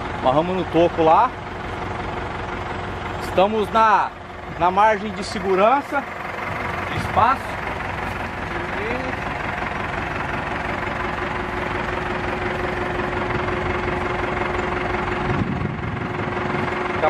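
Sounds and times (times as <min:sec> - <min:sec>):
diesel truck engine idling: 0:00.0 - 0:17.0.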